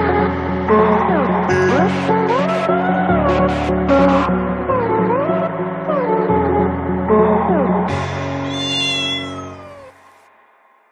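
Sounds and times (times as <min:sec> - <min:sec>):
background music: 0:00.0 - 0:10.5
drawn-out pitched call: 0:08.5 - 0:09.9.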